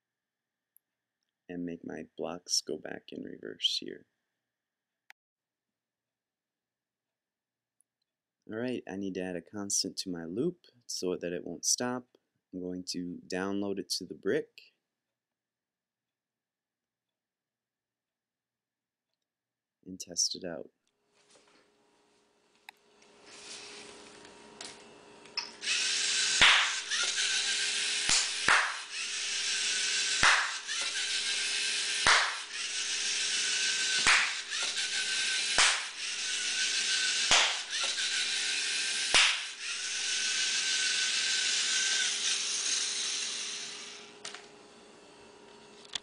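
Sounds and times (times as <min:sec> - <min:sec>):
small robot motors whirring: 0:23.2 - 0:24.8, 0:25.4 - 0:44.5
sharp hand claps: 0:26.4 - 0:26.7, 0:28.1 - 0:28.8, 0:30.2 - 0:30.5, 0:32.0 - 0:32.4, 0:34.0 - 0:34.4, 0:35.6 - 0:35.9, 0:37.3 - 0:37.6, 0:39.1 - 0:39.4.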